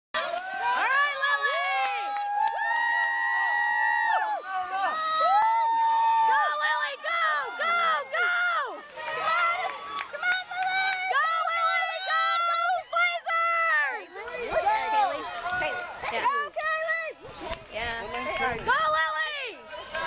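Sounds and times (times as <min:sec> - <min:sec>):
crowd cheering and shouting: 0:00.2 - 0:20.0.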